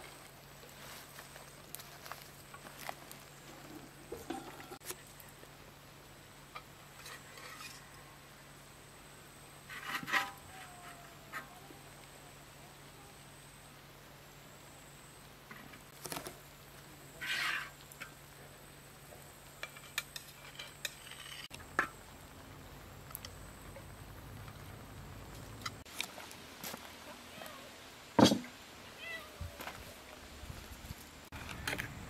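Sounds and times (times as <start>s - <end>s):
metal spatula scraping pan: 17.2s - 17.8s.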